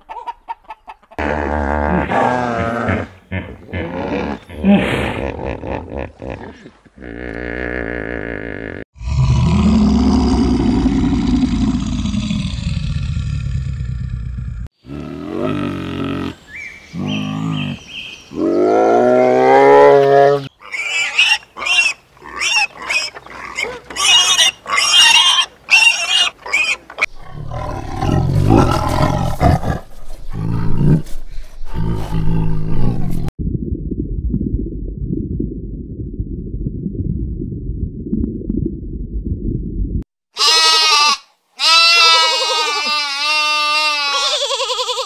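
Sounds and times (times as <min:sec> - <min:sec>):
low grunts: 0:01.2 - 0:16.4
animal growling: 0:06.4 - 0:16.4, 0:27.0 - 0:33.3
animal cries: 0:40.4 - 0:45.0.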